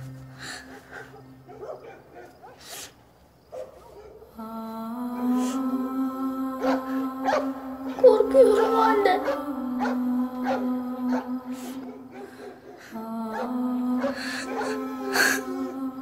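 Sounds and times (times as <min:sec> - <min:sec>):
young boy crying quietly: 0:00.0 - 0:01.7, 0:06.6 - 0:15.8
sniffles and sobs: 0:00.3 - 0:03.1.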